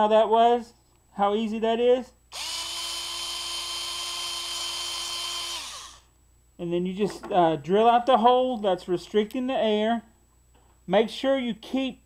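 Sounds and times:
electric drill running: 2.3s - 6.1s.

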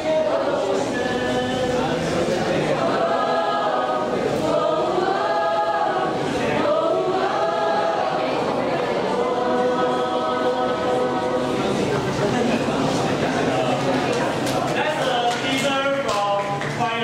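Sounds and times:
choir singing: 0.0s - 13.5s.

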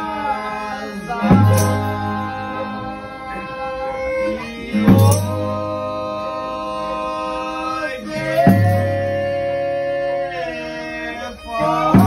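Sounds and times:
guitar strumming: 0.0s - 6.2s
fiddle: 0.0s - 12.0s
voices singing in harmony: 0.0s - 12.0s.

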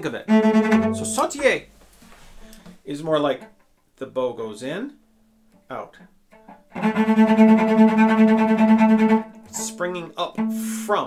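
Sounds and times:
cello fast bow strokes: 0.0s - 2.6s, 6.3s - 11.0s.

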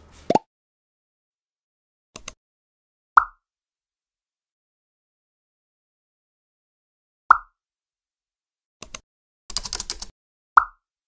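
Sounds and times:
plop pop sound effect: 7.3s - 7.5s, 10.6s - 10.8s
rapid clicks: 8.8s - 10.1s.

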